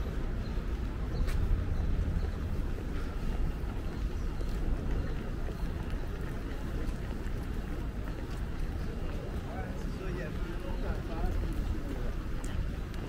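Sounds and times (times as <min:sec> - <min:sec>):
distant traffic rumble: 0:00.0 - 0:13.0.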